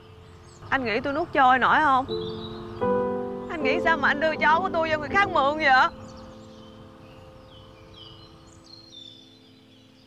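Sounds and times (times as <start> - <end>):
small birds chirping: 0.0 - 10.0
soft background music chord: 0.0 - 10.0.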